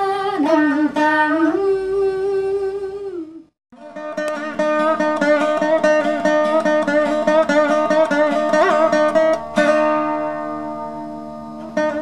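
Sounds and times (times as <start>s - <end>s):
vina plucked notes: 0.0s - 12.0s.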